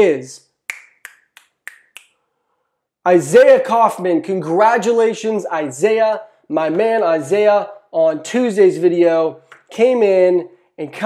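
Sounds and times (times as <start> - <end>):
fingers snapping: 0.7 - 2.2.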